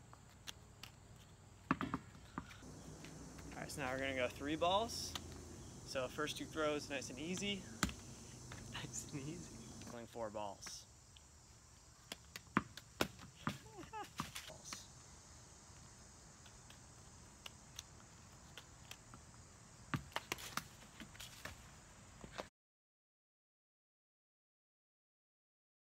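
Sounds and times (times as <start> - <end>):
balls slapping into hands: 4.8 - 5.5, 7.2 - 10.0, 12.0 - 14.9, 19.9 - 21.6.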